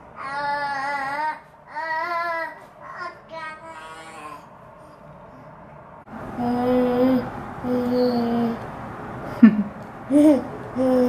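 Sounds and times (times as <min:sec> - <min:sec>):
baby vocalizing: 0:10.1 - 0:11.0.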